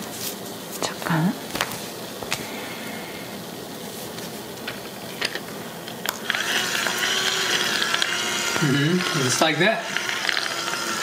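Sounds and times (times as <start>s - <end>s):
massager motor running: 6.0s - 11.0s.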